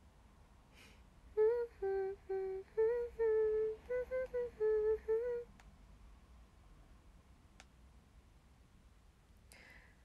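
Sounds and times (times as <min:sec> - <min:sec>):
woman humming a tune: 0:01.4 - 0:05.5.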